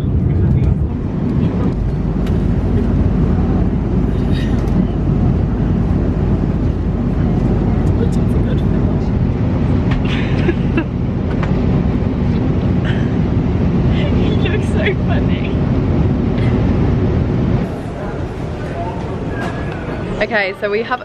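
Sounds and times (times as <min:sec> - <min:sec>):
airliner cabin drone: 0:00.0 - 0:21.0.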